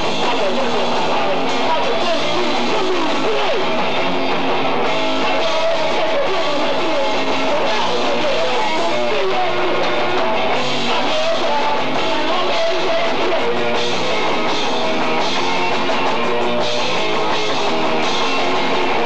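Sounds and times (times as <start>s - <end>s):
punk rock band playing live: 0.0s - 19.0s.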